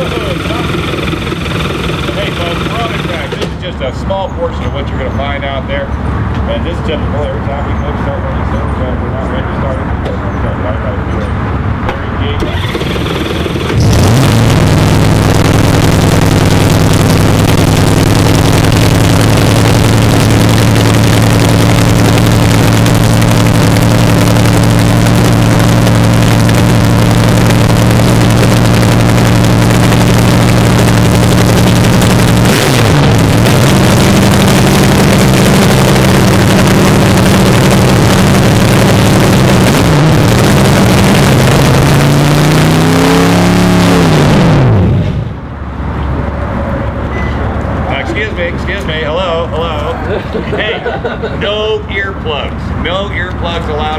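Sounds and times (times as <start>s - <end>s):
dragster engine starting and idling: 0.0s - 10.0s, 11.7s - 46.2s
engine revving blips: 0.0s - 49.6s.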